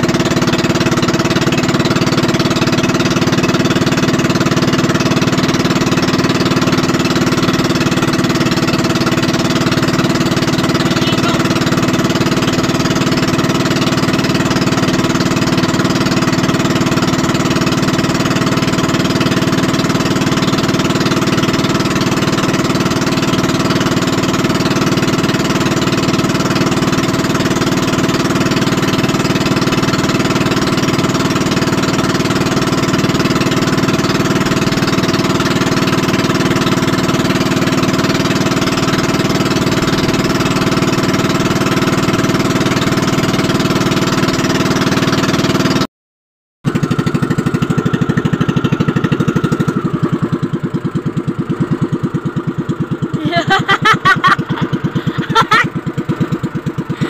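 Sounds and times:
boat engine droning: 0:00.0 - 0:45.9, 0:46.7 - 0:57.0.

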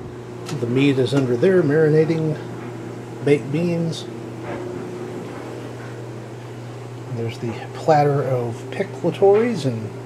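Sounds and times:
appliance humming: 0:00.0 - 0:10.0.

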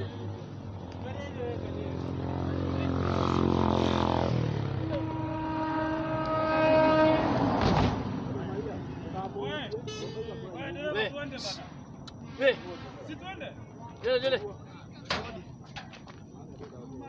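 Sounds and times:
vehicle engine passing by: 0:00.6 - 0:09.6.

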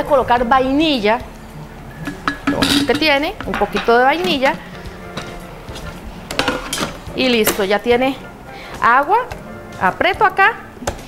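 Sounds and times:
carafe clicks and knocks: 0:02.1 - 0:04.4.

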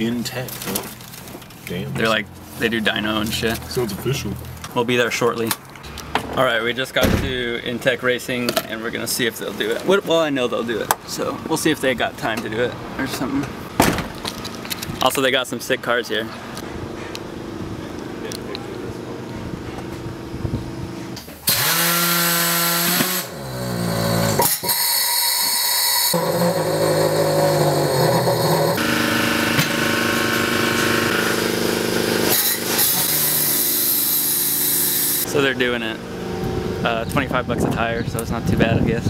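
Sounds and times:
tire changer motor humming: 0:16.7 - 0:37.5.

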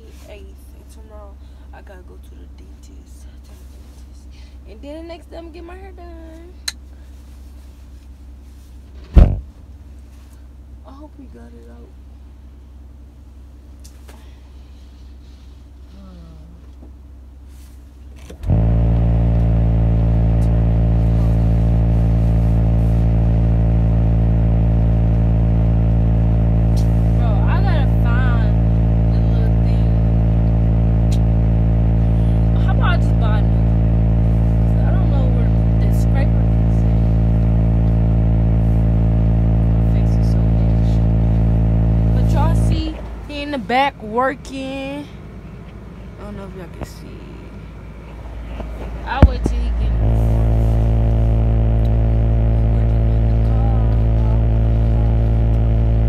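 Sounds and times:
loud low engine drone: 0:17.5 - 0:56.0.

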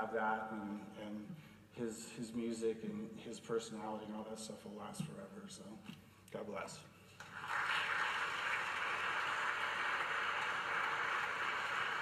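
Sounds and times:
audience applauding: 0:07.2 - 0:12.0.

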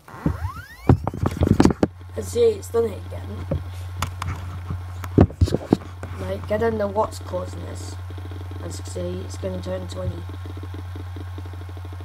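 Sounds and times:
hard drive clicking: 0:00.0 - 0:12.0
hard drive spinning up whine: 0:00.0 - 0:12.0.

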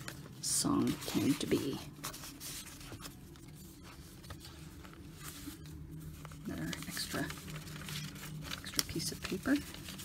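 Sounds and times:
low room hum: 0:00.0 - 0:10.0
paper rustling and sliding: 0:00.0 - 0:10.0.

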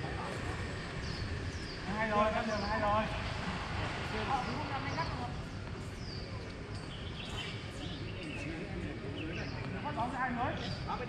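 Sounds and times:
low outdoor background noise: 0:00.0 - 0:11.0
birds chirping: 0:00.2 - 0:03.4, 0:04.1 - 0:11.0.

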